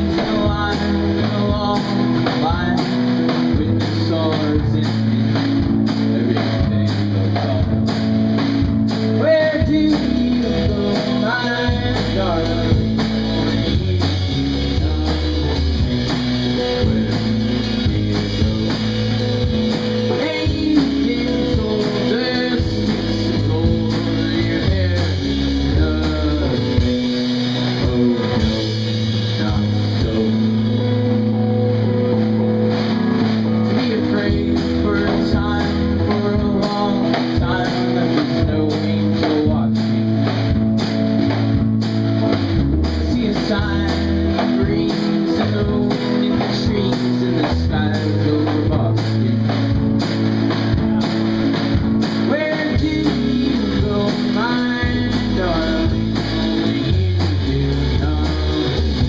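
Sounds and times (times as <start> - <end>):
man singing: 0.0 - 41.5, 42.3 - 59.0
bass line: 0.0 - 59.0
drum kit keeping time: 0.0 - 59.0
electric guitars: 0.0 - 59.0.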